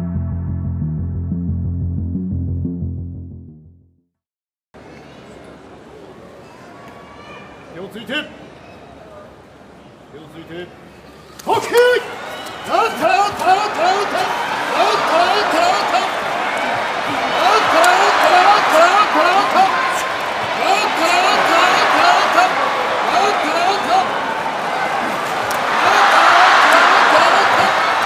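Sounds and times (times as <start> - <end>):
referee calling rapidly: 11.5 - 25.1, 25.7 - 28.0
crowd shouting: 11.7 - 28.0.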